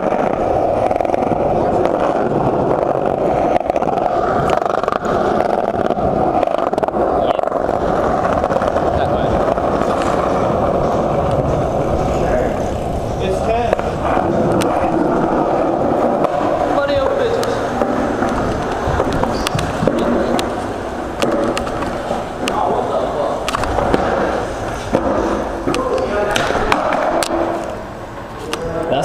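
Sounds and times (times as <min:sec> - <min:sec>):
skateboard wheels rolling on pavement: 0:00.0 - 0:29.0.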